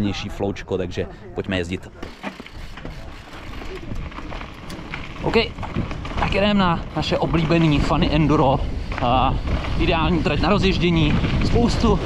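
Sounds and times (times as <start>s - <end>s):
bike tyres rolling on dirt: 1.8s - 12.0s
bike clicking and rattling: 2.0s - 12.0s.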